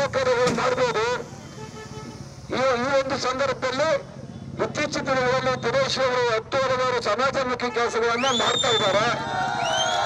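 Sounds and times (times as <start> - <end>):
man speaking into a microphone: 0.0 - 1.3, 2.5 - 9.2
faint outdoor background noise: 0.0 - 10.0.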